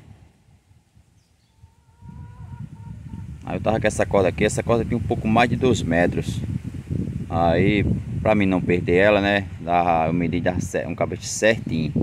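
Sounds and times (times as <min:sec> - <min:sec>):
distant animal call: 0:01.4 - 0:03.3.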